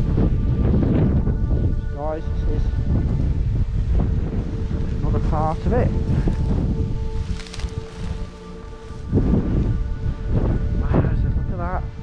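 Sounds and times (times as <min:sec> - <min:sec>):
background music of held notes: 0:00.0 - 0:12.0
wind buffeting microphone: 0:00.0 - 0:12.0
brief rustle: 0:07.2 - 0:08.2.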